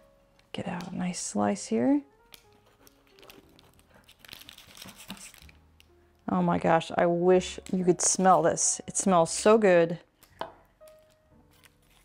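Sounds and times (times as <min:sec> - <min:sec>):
quiet background music: 0:00.0 - 0:12.0
knife crunching through pizza crust: 0:11.6 - 0:12.0.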